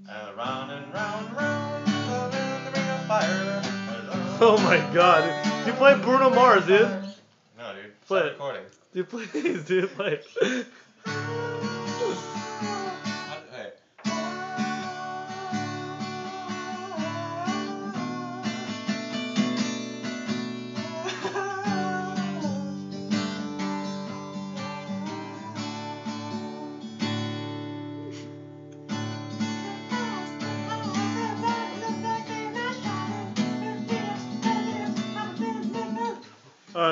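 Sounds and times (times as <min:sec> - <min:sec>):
acoustic guitar strumming: 0:00.0 - 0:07.2, 0:11.0 - 0:13.4, 0:14.0 - 0:36.4
man singing: 0:00.0 - 0:07.2, 0:11.0 - 0:13.3, 0:14.0 - 0:19.2, 0:20.8 - 0:26.8, 0:30.0 - 0:36.9.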